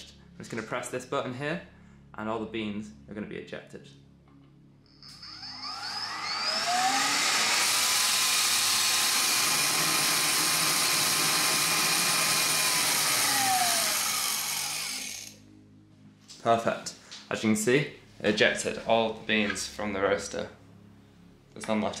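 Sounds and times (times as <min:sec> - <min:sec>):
coffee roaster blower whine: 0:05.0 - 0:15.4.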